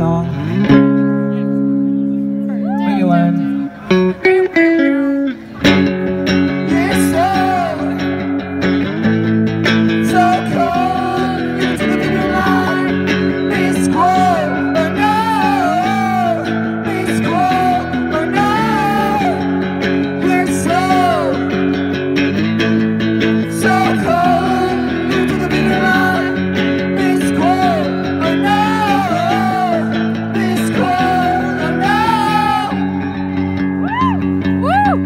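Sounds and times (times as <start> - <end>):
live rock electric guitar: 0.0 - 35.0.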